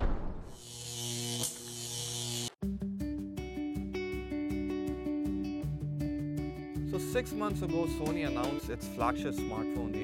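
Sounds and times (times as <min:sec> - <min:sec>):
rhythmic background music: 0:02.6 - 0:10.0.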